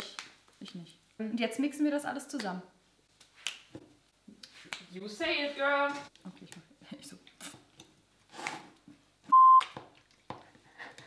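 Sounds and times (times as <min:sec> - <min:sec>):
censor bleep: 0:09.3 - 0:09.6.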